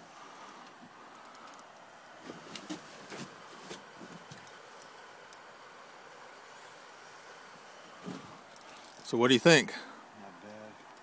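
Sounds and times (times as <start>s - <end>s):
river ambience hiss: 0.0s - 11.0s.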